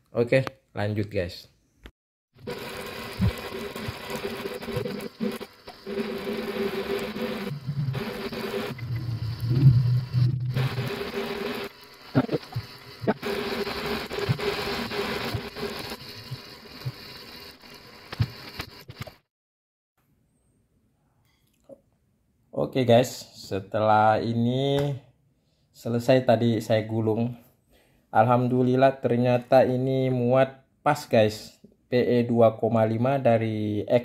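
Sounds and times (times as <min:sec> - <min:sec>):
fishing reel whirring: 0:02.4 - 0:18.8.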